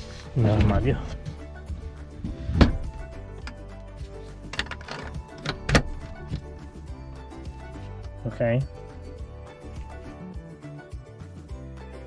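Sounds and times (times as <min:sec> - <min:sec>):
background music: 0:00.0 - 0:12.0
wooden drawer knocking shut: 0:02.4 - 0:02.9.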